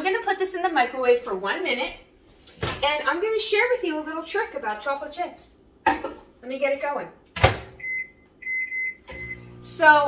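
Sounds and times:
electronic keypad beeps: 7.8 - 9.4.

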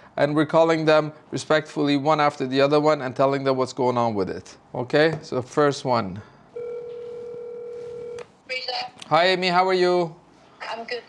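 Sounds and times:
telephone ringback tone: 6.6 - 8.2.

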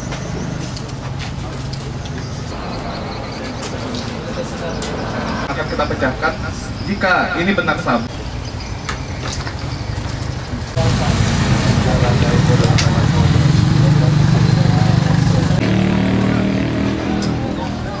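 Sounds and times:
loud steady motor hum: 10.0 - 18.0.

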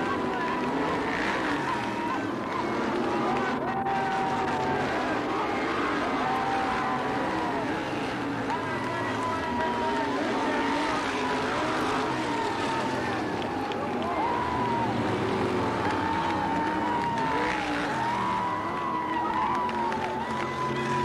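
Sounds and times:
crowd noise: 0.0 - 21.0
race car engines passing: 0.0 - 21.0.

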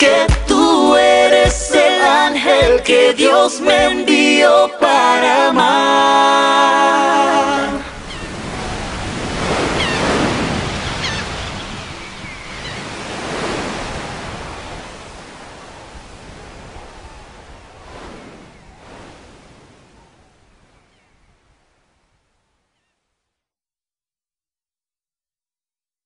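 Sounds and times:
ocean waves washing in: 6.7 - 22.4.

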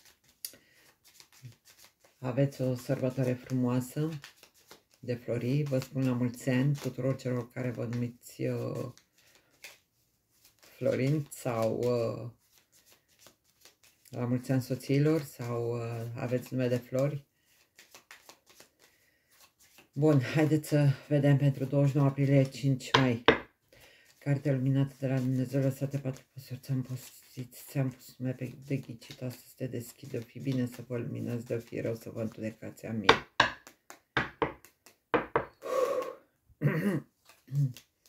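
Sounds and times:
playing cards being shuffled: 0.0 - 36.1, 37.1 - 38.0.

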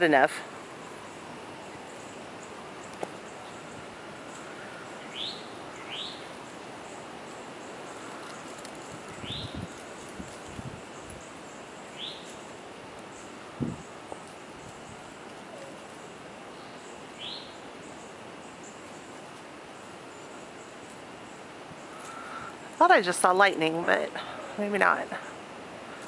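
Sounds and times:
wind hiss: 0.0 - 26.0
bird chirping: 1.0 - 12.5, 15.5 - 19.1.

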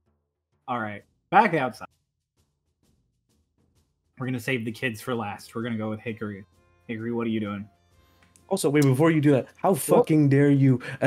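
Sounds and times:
faint music with soft drum beat: 0.7 - 11.0.

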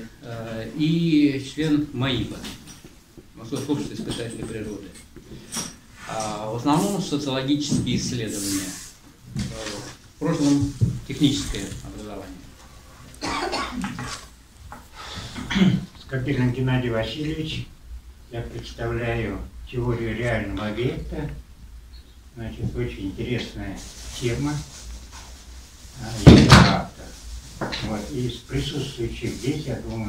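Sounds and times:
person coughing: 13.2 - 14.2, 15.3 - 15.9
loud knock: 26.2 - 26.9.

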